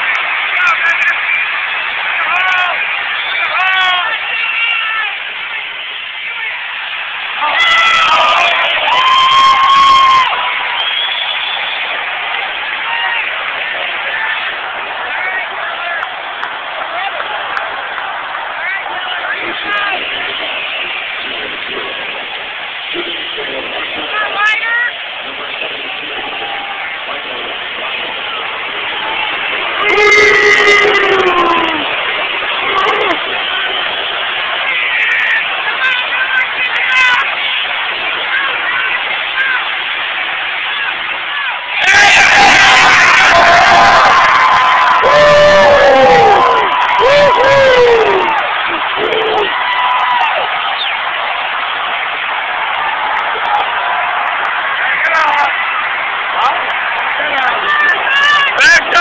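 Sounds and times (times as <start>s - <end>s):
crowd talking and shouting: 0.0s - 59.0s
crowd yelling loudly: 0.0s - 59.0s.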